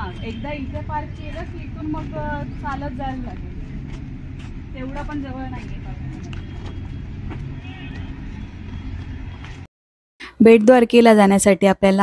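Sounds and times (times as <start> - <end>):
low outdoor rumble: 0.0 - 9.7.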